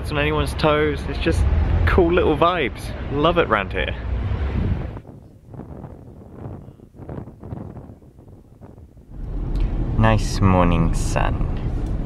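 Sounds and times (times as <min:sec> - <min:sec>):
street noise: 0:00.0 - 0:12.0
wind on microphone: 0:04.0 - 0:10.0
car driving rumble from inside: 0:08.8 - 0:12.0.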